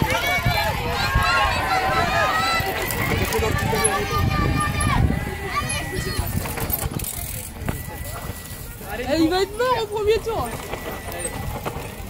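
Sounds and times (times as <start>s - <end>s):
mountain bikes rolling over dirt: 0.0s - 12.0s.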